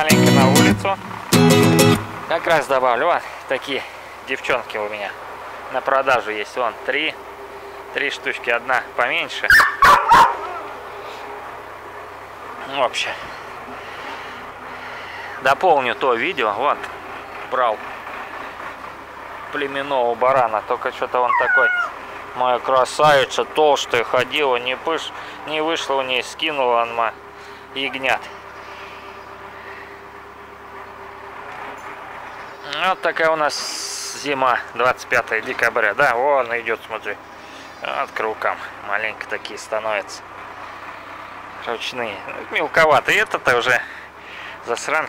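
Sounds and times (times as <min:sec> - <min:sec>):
dog barking: 0:09.5 - 0:10.7.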